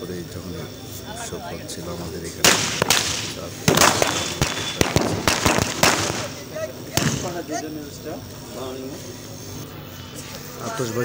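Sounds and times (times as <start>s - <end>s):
firecrackers banging: 2.2s - 7.6s.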